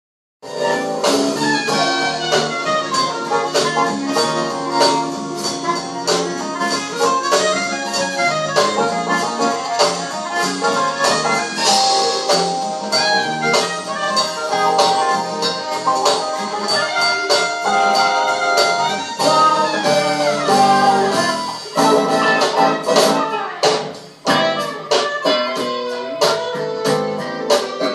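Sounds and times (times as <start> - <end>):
jazz band playing: 0.4 - 27.9
soprano saxophone melody: 0.5 - 23.7, 24.3 - 27.9.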